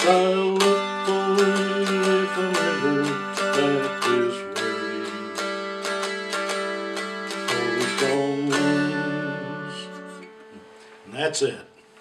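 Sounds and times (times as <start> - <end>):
dulcimer strum ringing out: 0.0 - 10.9.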